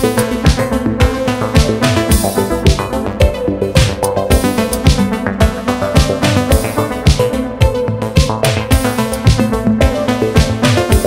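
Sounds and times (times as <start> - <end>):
drum machine beat: 0.0 - 11.0
synthesizer lines: 0.0 - 11.0.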